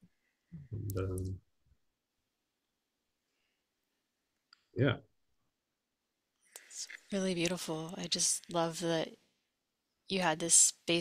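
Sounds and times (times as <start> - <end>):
person speaking softly: 0.6 - 1.4.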